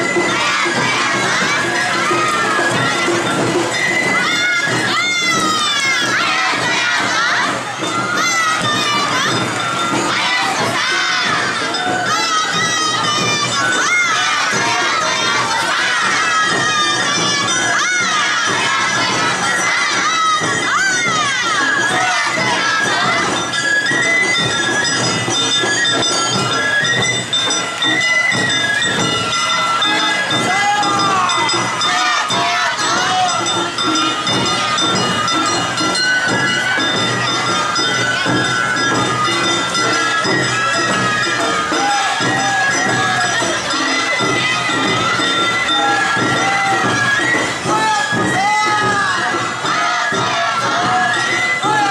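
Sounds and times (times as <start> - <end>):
crowd: 0.0 - 51.9
festival band music: 0.0 - 51.9
high-pitched voices calling out: 0.0 - 51.9.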